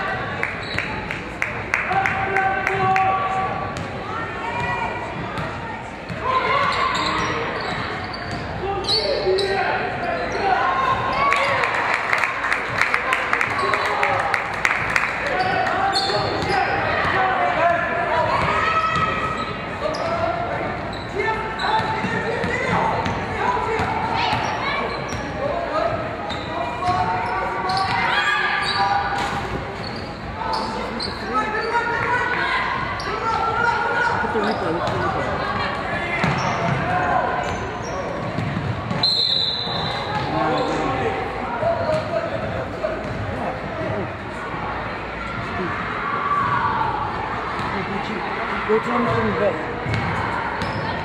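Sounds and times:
voices in a gym: 0:00.0 - 0:51.0.

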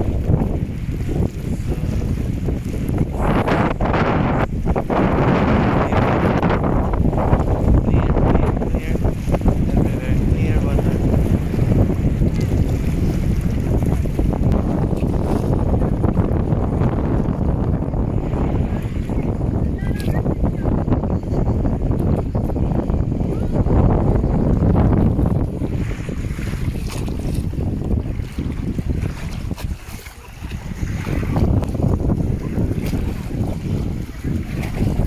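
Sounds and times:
waves washing against rocks: 0:00.0 - 0:35.0
wind buffeting microphone: 0:00.0 - 0:35.0.

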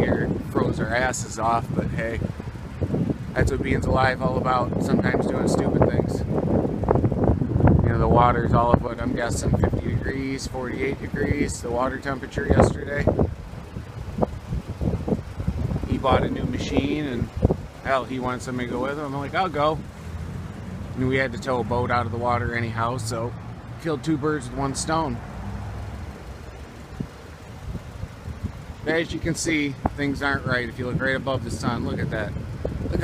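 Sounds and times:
low outdoor rumble: 0:00.0 - 0:33.0
wind buffeting microphone: 0:00.0 - 0:33.0.

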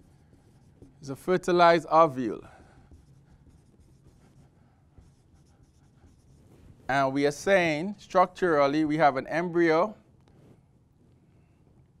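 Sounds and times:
marker writing on whiteboard: 0:00.0 - 0:07.1
low room hum: 0:00.0 - 0:12.0.

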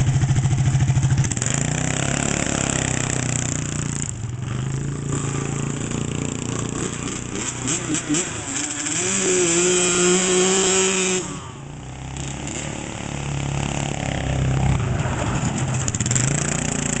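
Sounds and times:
dirt bike engine revving: 0:00.0 - 0:17.0
go-kart engine: 0:00.0 - 0:17.0.

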